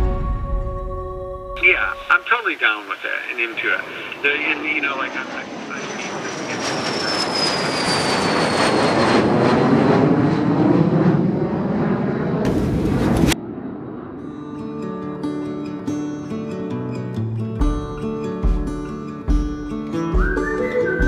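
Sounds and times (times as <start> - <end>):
high engine whine: 1.2 - 16.1
jet engines and rushing air: 1.6 - 15.8.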